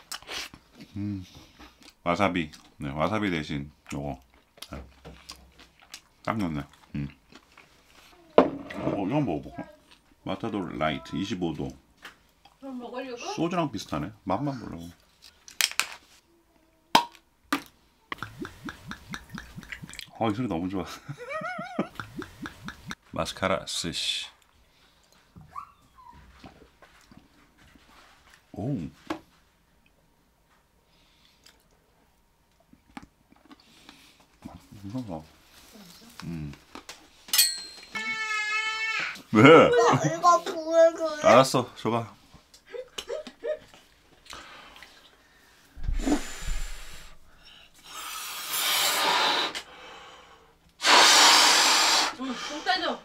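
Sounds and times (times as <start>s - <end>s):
liquid glugging from bottle: 18.2s - 20.2s
glass clink: 37.3s - 38.0s.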